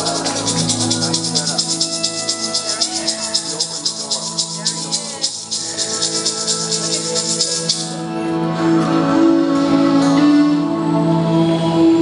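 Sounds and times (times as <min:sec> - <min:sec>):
hand rattle shaking: 0:00.0 - 0:08.0
sustained drone notes: 0:00.0 - 0:08.6.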